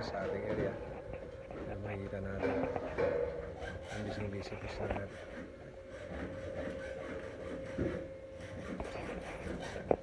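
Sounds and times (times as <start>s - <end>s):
mid-pitched hum: 0.0s - 10.0s.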